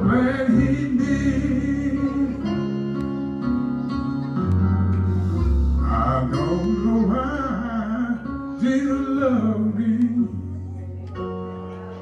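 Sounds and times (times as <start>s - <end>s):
man singing with vibrato: 0.0s - 2.8s, 5.4s - 10.6s
sustained instrumental accompaniment: 0.1s - 10.2s.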